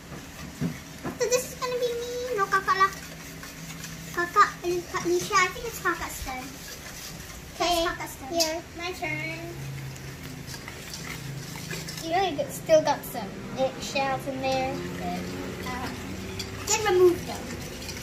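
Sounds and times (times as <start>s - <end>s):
children talking and exclaiming: 12.0s - 16.0s.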